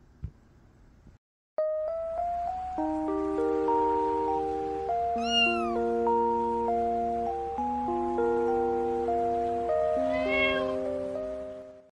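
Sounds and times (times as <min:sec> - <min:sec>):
synth background music: 0:01.6 - 0:11.9
cat meowing: 0:05.2 - 0:05.8, 0:10.0 - 0:10.9.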